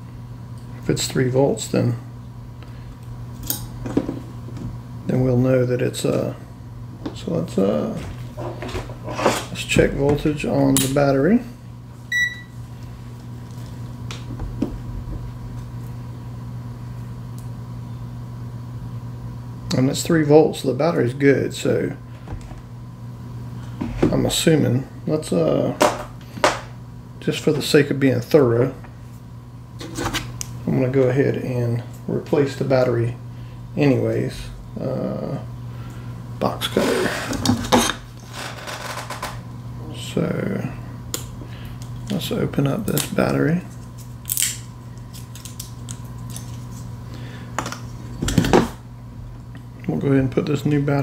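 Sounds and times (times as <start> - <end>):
steady low hum: 0.0 - 51.0
multimeter power-on beep: 12.1 - 12.6.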